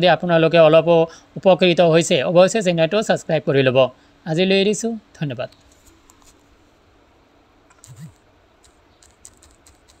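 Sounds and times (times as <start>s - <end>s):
faint clicks and ticks: 7.7s - 10.0s.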